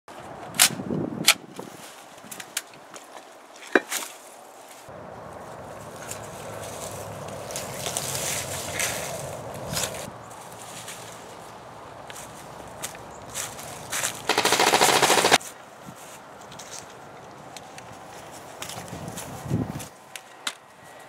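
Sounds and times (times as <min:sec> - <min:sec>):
movement through dry brush: 0:01.5 - 0:21.0.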